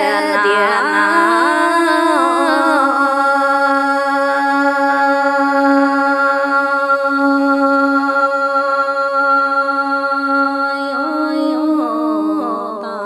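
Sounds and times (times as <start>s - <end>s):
woman singing a long note: 0.0s - 8.4s, 9.4s - 13.0s.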